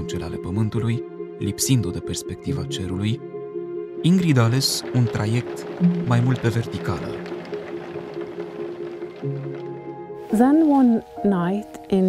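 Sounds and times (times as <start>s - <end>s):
soft sustained chords music: 0.0s - 12.0s.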